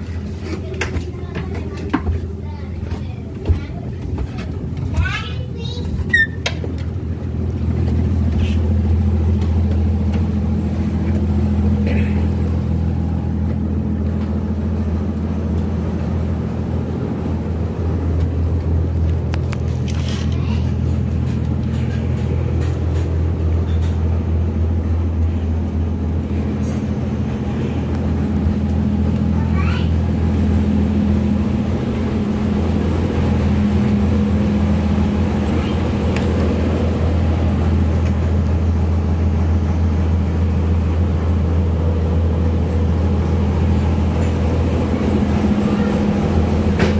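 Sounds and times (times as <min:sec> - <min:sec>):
boat engine droning: 0:00.0 - 0:46.9.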